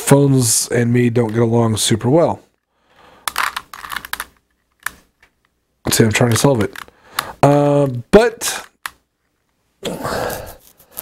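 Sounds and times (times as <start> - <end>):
puzzle cube clicking turns: 3.0 - 9.1.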